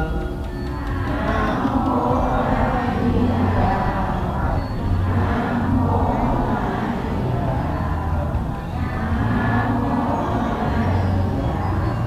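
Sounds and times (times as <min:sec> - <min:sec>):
many voices chanting: 0:00.0 - 0:12.0.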